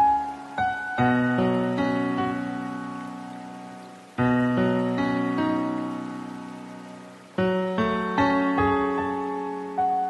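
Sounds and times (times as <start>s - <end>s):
slow solo piano: 0.0s - 6.6s.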